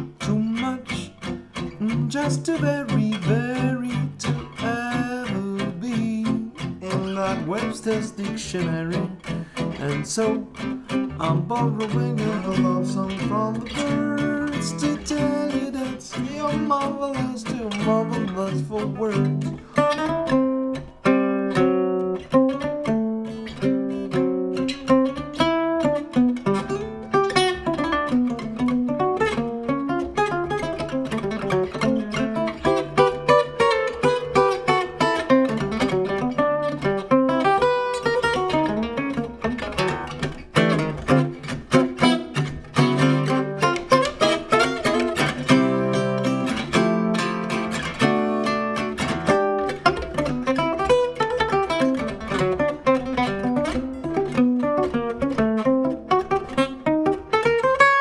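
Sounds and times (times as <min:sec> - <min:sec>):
acoustic guitar playing swing: 0:00.0 - 0:58.0.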